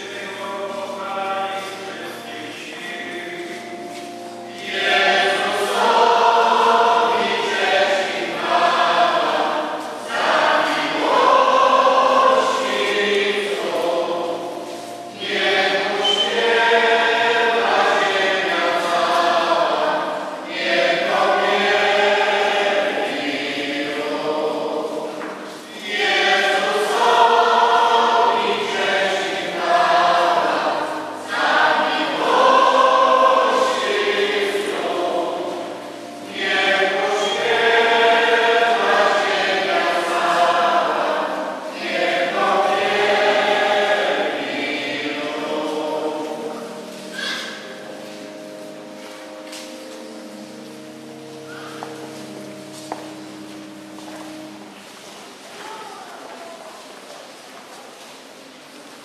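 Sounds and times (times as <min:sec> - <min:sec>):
many voices singing a hymn: 0:00.0 - 0:57.4.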